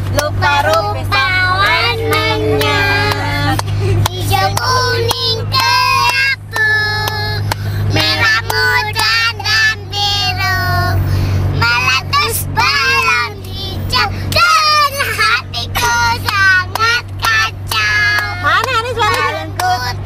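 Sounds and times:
low car hum: 0:00.0 - 0:20.0
girls singing: 0:00.1 - 0:10.7.

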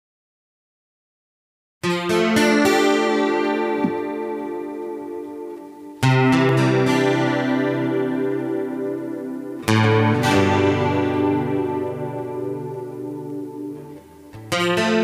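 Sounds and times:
acoustic guitar chords ringing: 0:01.8 - 0:15.0.

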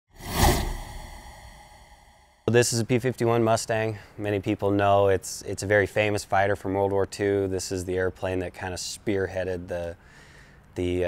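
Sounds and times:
whoosh sound effect: 0:00.2 - 0:02.5.

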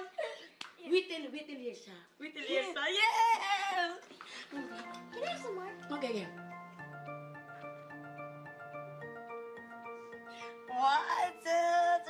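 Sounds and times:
laughter: 0:00.0 - 0:00.6
soft background music: 0:04.5 - 0:12.0.

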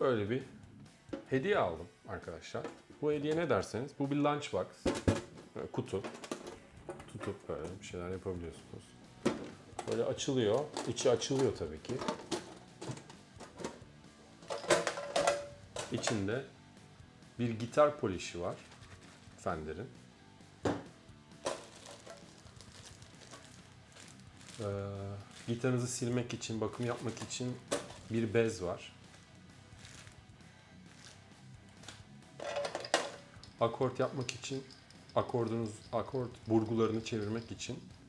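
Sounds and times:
faint background music: 0:00.0 - 0:38.0
tin lunch box clinking and rattling: 0:09.8 - 0:13.8, 0:14.4 - 0:16.2, 0:21.4 - 0:22.4, 0:32.4 - 0:37.7.

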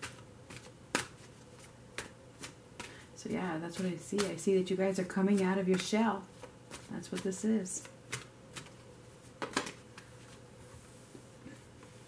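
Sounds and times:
cards being shuffled: 0:00.0 - 0:03.0, 0:05.3 - 0:10.4.

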